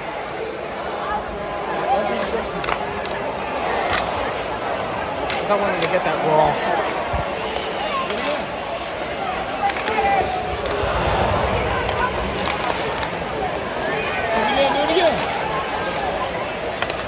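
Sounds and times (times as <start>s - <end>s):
hubbub of spectators talking: 0.0s - 17.0s
hockey sticks and puck clicking: 2.5s - 6.3s, 7.4s - 8.4s, 9.1s - 10.8s, 12.2s - 17.0s.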